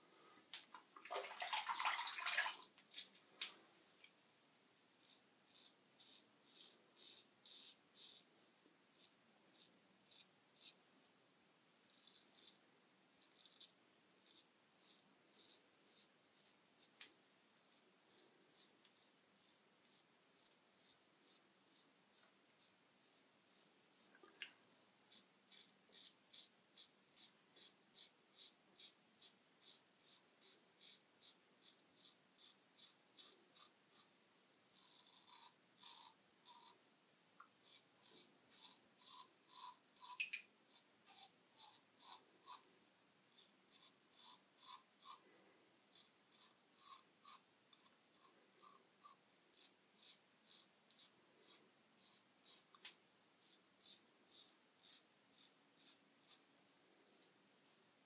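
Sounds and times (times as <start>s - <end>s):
razor scraping stubble: 5.0s - 8.3s, 13.2s - 17.0s, 34.7s - 36.8s, 37.6s - 42.6s, 43.3s - 45.2s, 45.9s - 52.7s, 53.4s - 56.4s.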